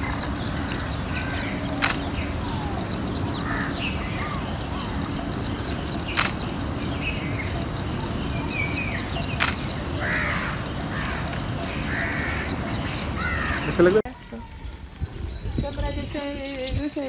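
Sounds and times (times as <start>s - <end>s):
steady background hiss: 0.0s - 14.0s
harsh cawing bird calls: 0.0s - 15.7s.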